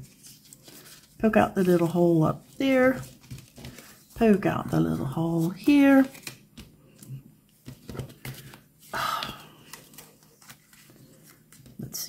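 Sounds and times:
paper rustle: 0.0 - 8.6, 9.2 - 11.8.

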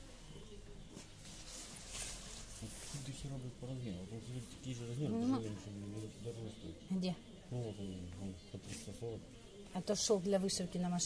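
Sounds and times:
low steady shop hum: 0.0 - 11.0.

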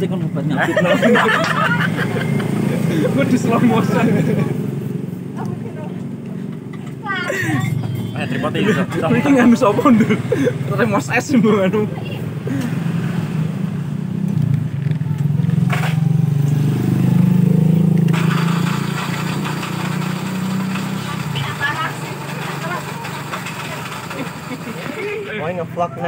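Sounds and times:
motorcycle engine passing: 0.7 - 25.7.

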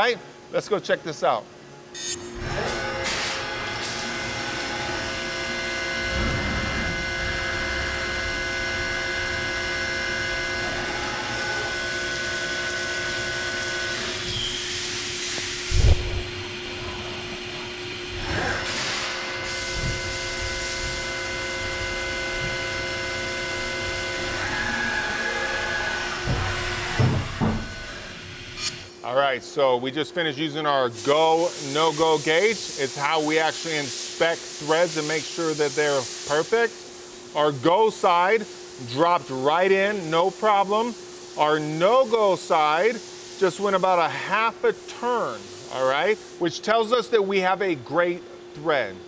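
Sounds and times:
milling machine spindle whine: 2.0 - 15.6, 19.3 - 28.7
thump: 26.2 - 27.7.

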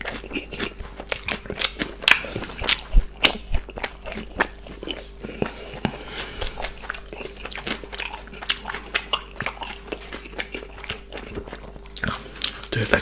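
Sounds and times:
chewing with crunches: 0.0 - 13.0.

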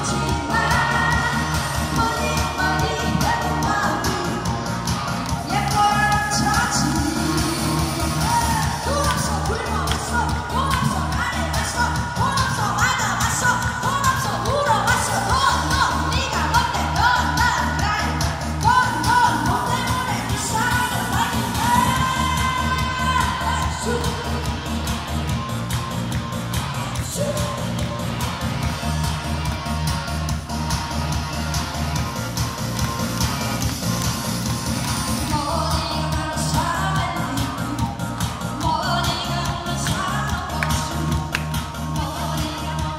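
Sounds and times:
woman singing into microphone: 0.0 - 4.8, 5.4 - 24.7, 35.2 - 42.9
backing track with bass beat: 0.0 - 42.9.

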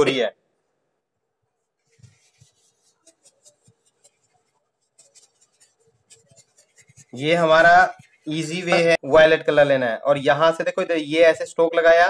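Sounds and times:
paintbrush scratching on paper: 1.7 - 9.0.

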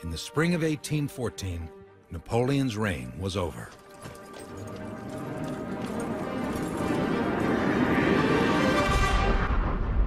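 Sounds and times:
background music: 0.0 - 10.0
horse hooves clip-clopping: 3.4 - 7.8.

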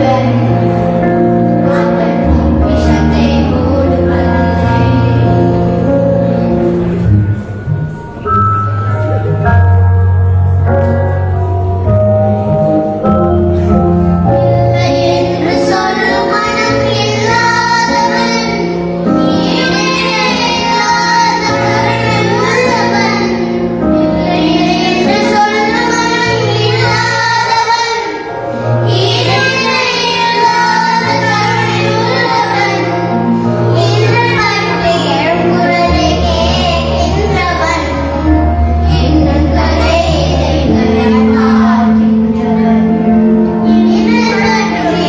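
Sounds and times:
children singing into microphones: 0.0 - 7.5, 10.6 - 45.0
instrumental accompaniment with bass: 0.0 - 45.0.

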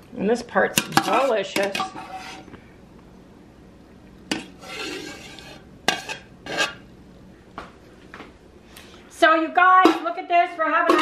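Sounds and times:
metal spoon scraping ice cream: 0.9 - 2.5, 4.3 - 6.8.

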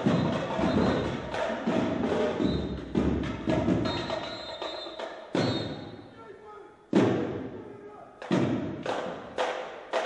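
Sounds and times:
hard percussive hits echoing: 0.0 - 6.1, 6.9 - 10.0.

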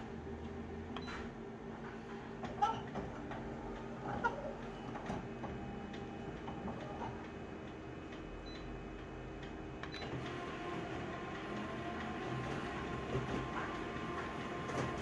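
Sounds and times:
copier machine hum: 0.0 - 15.0
steady printer whine: 0.0 - 15.0.

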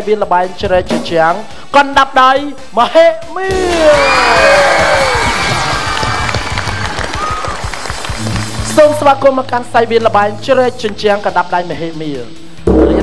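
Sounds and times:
audience clapping and cheering: 3.6 - 9.2.

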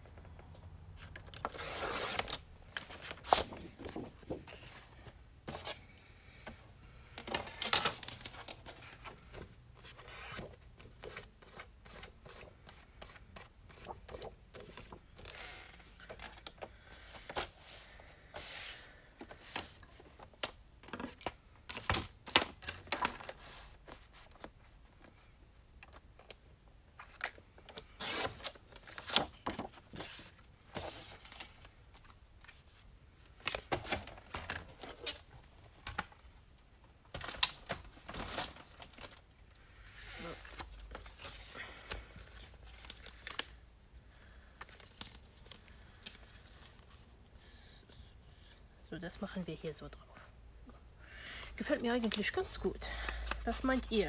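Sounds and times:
paper rustling and scraping: 1.0 - 5.8.

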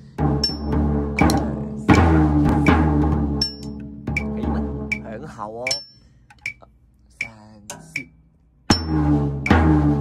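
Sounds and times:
drum struck with drumsticks: 0.2 - 6.6, 7.2 - 10.0.

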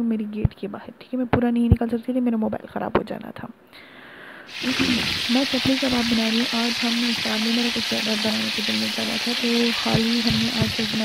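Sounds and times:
food sizzling in oil: 4.5 - 11.0
person speaking: 4.5 - 11.0.

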